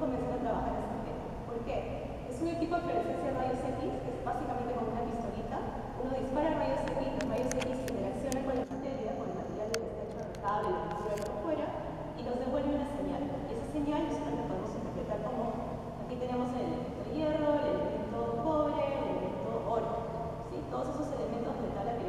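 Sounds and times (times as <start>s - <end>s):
woman speaking: 0.0s - 22.0s.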